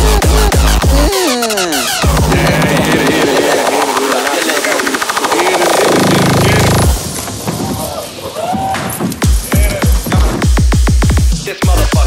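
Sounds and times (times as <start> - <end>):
chopped vocal: 0.0 - 7.0
rising synth: 0.0 - 7.3
electronic hardcore dance music: 0.0 - 7.6, 8.5 - 12.0
rapid drum roll: 0.0 - 8.1.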